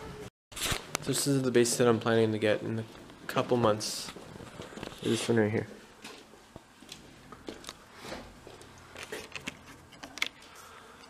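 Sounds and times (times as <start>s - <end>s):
handling clicks and rustles: 0.8s - 10.6s.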